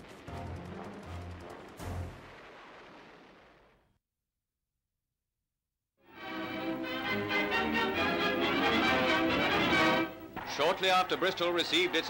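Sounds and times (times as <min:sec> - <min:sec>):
explosion blast with rumble: 0:00.0 - 0:03.9.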